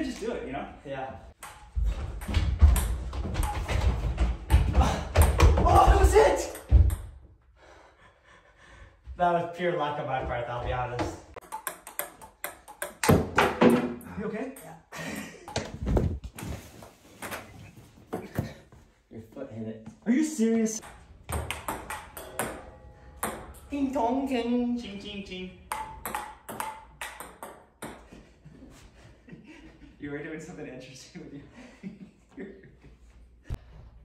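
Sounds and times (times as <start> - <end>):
ping pong ball clicks: 11.4 - 13.2, 21.3 - 22.6, 25.7 - 28.0.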